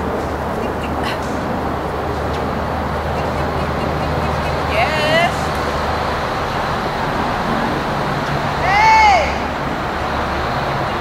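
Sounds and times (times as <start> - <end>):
distant road traffic hum: 0.0 - 11.0
person calling to a dog: 4.5 - 5.6, 8.6 - 9.5.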